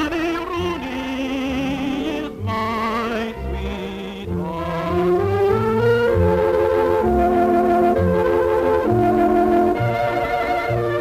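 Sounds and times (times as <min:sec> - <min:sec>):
man singing with vibrato: 0:00.0 - 0:05.4
orchestra playing: 0:00.0 - 0:11.0.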